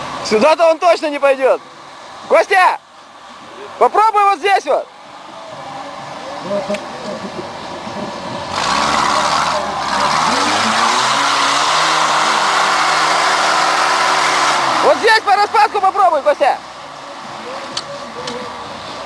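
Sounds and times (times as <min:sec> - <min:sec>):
off-road vehicle engine revving: 0:05.5 - 0:19.0.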